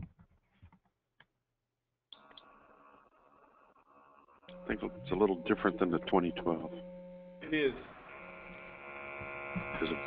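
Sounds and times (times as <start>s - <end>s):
electric pump hum: 2.2s - 10.0s.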